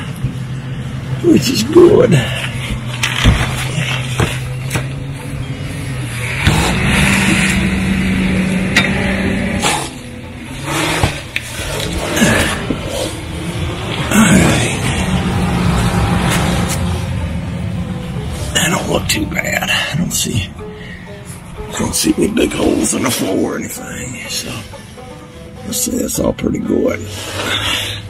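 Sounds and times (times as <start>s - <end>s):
steady hum: 0.0s - 28.0s.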